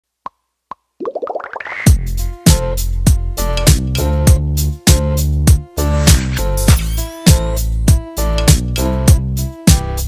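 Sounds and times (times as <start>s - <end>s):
music beat: 1.9s - 10.0s
bass-heavy hit: 3.1s - 9.3s.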